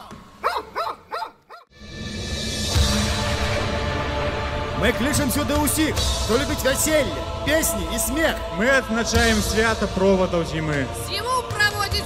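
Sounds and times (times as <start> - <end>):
dog barking: 0.4 - 1.7.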